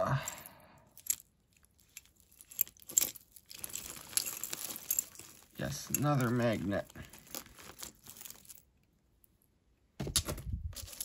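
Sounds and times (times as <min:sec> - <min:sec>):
jewelry clinking: 0:00.1 - 0:09.5, 0:10.7 - 0:11.0
small clicks and rustling: 0:01.0 - 0:09.0.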